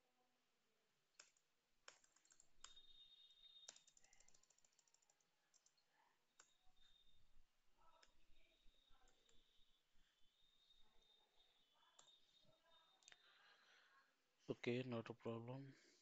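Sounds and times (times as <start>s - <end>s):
faint keyboard keystrokes: 1.2s - 7.1s.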